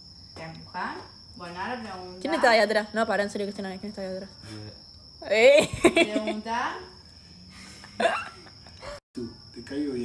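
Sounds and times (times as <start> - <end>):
crickets trilling: 0.0 - 10.0
person laughing: 7.7 - 9.0.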